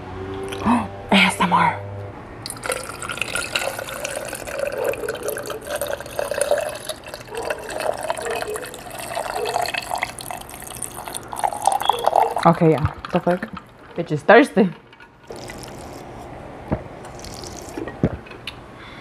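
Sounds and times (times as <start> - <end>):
water pouring into steel tumbler: 2.5 - 14.0, 15.3 - 16.2, 17.0 - 17.8.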